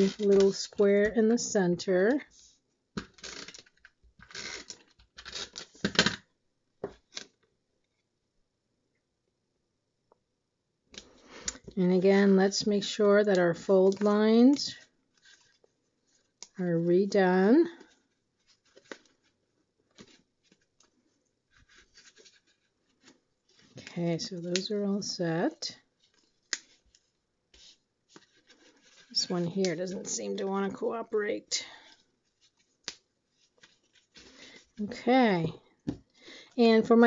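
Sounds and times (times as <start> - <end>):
cardstock rustling as creased: 17.8 - 23.9, 26.0 - 29.7.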